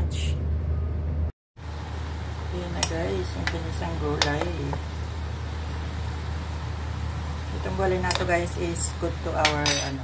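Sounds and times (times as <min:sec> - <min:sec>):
food sizzling in a pan: 0:01.6 - 0:10.0.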